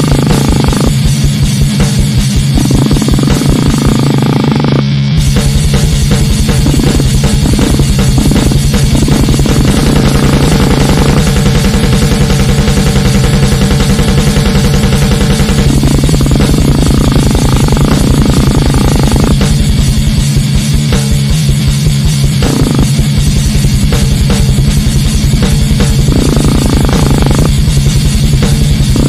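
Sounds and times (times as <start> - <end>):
distorted electric guitars: 0.0 - 29.0
fast drumming: 0.0 - 29.0.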